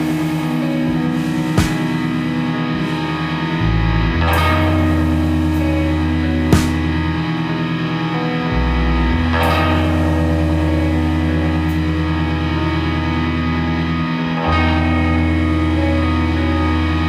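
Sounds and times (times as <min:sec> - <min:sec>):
rock band playing held chords: 0:00.0 - 0:17.0.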